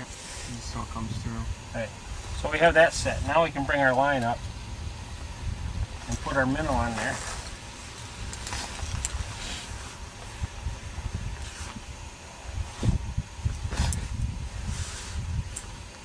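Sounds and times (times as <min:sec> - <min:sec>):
wind buffeting microphone: 0:00.0 - 0:16.0
handling clicks and rustles: 0:06.0 - 0:10.4.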